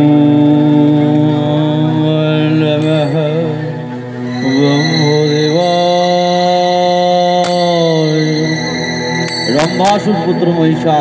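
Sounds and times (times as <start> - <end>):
musical accompaniment: 0.0 - 11.0
person singing long chant-like note: 0.0 - 11.0.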